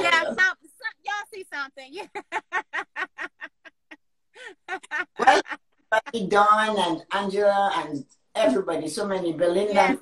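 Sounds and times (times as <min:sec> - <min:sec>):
women laughing: 0:01.8 - 0:06.4.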